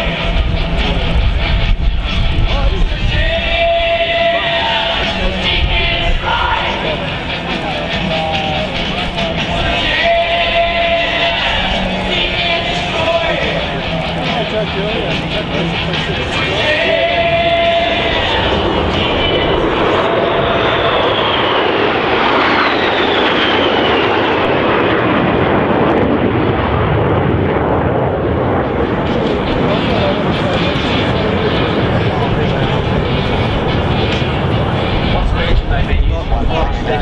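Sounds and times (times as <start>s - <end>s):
jet aircraft flying past: 0.0s - 37.0s.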